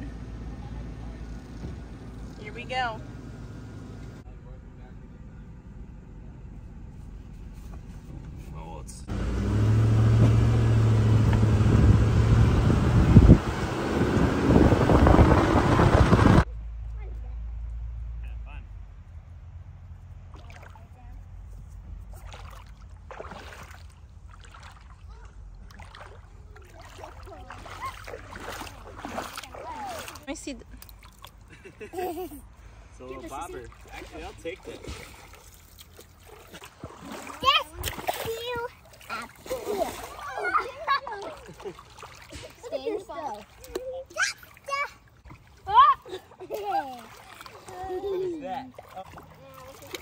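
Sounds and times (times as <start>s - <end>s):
low steady rumble: 0.0s - 44.0s
splashing in shallow water: 20.2s - 32.1s, 33.3s - 50.0s
children chattering and squealing: 26.3s - 30.3s, 37.2s - 48.6s.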